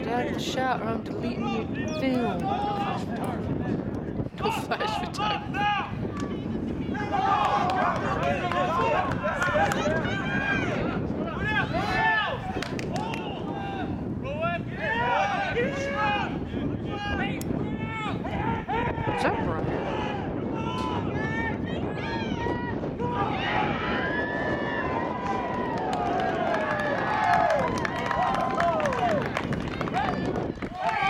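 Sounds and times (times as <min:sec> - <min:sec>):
steady outdoor rush: 0:00.0 - 0:31.0
players and spectators shouting: 0:01.4 - 0:03.4, 0:04.4 - 0:31.0
long drawn-out shouts: 0:06.9 - 0:29.3.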